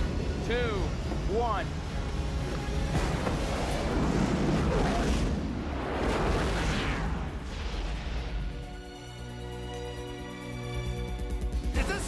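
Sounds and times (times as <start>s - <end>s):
film music score: 0.0s - 12.0s.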